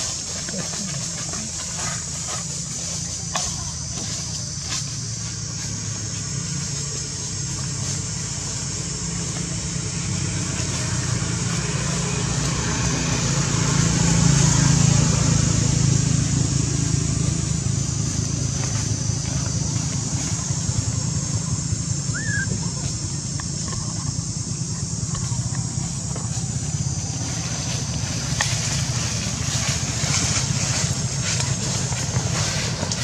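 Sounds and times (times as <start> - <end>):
vehicle engine passing by: 0.0 - 33.0.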